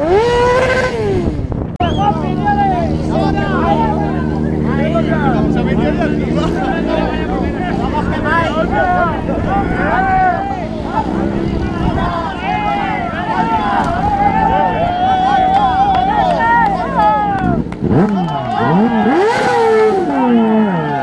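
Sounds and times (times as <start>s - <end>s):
racing engine revving: 0.0s - 21.0s
crowd shouting: 1.8s - 21.0s.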